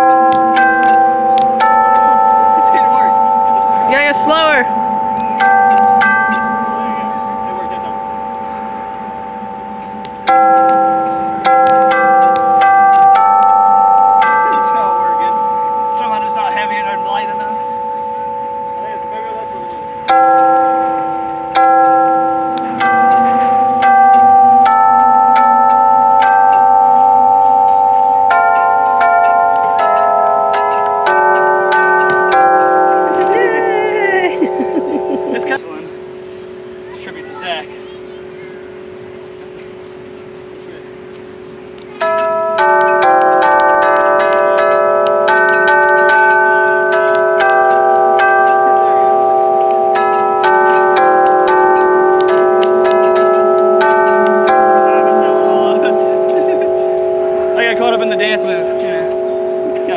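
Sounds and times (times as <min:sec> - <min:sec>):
floor piano bell-like notes: 0:00.0 - 0:59.9.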